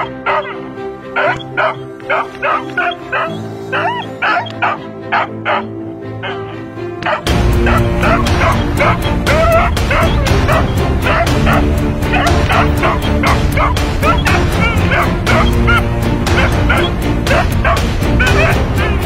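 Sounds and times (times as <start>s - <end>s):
puppy yipping and barking: 0.0s - 0.6s, 1.2s - 5.6s, 7.0s - 15.8s, 16.4s - 18.6s.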